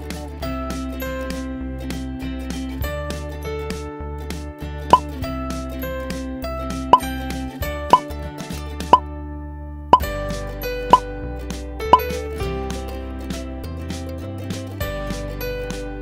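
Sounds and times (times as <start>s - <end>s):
light background music: 0.0s - 16.0s.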